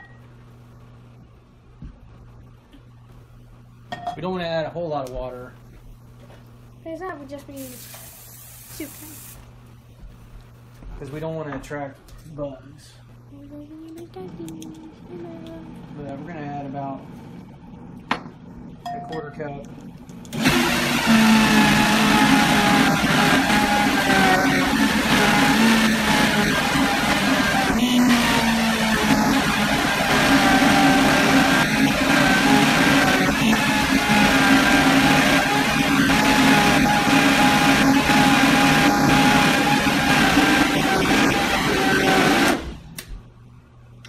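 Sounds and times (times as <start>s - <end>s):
blender motor running: 20.3s - 43.0s.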